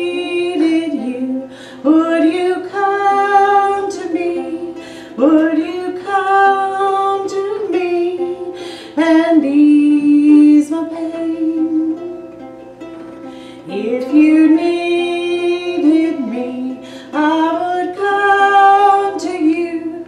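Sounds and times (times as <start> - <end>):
woman singing: 0.0 - 12.2, 13.6 - 20.0
strummed ukulele: 0.0 - 20.0.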